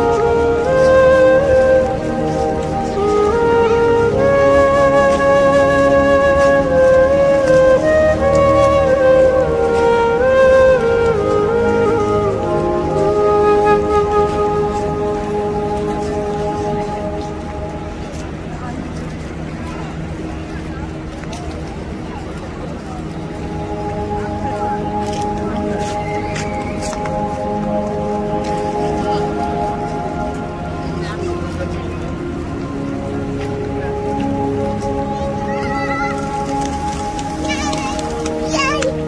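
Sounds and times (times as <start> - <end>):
flute-like slow melody: 0.0 - 39.0
people talking: 0.0 - 39.0.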